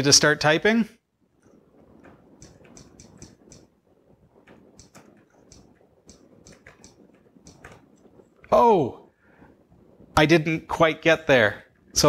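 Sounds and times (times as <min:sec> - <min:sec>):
faint keyboard typing clicks: 0:01.4 - 0:03.8, 0:04.4 - 0:08.5.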